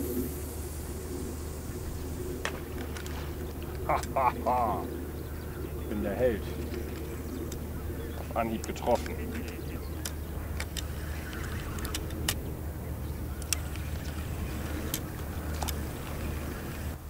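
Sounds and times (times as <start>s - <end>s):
steady low rumble: 0.0s - 17.0s
fishing reel clicks: 8.4s - 12.6s.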